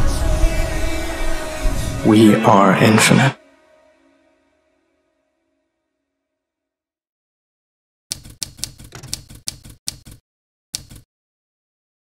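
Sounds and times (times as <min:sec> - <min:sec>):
typewriter keys clacking: 0:08.1 - 0:10.2, 0:10.8 - 0:11.1.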